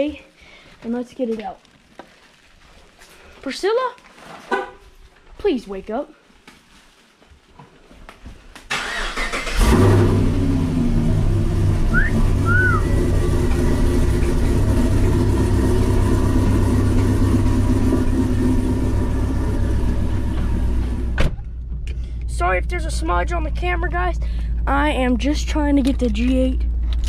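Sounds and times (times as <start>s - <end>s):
car engine starting and idling: 8.7s - 27.0s.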